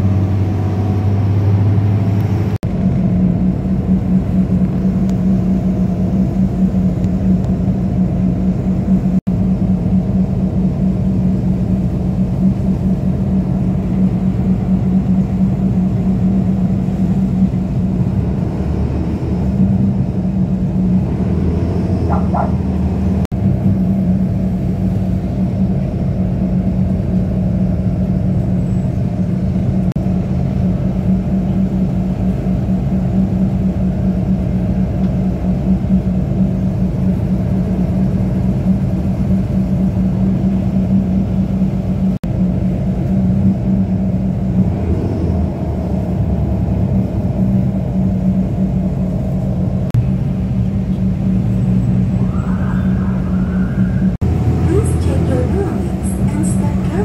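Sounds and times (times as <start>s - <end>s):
bus engine and road drone: 0.0s - 57.0s.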